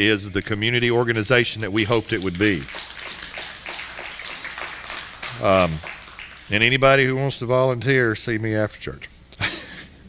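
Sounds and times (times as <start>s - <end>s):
congregation applauding: 0.4s - 7.3s.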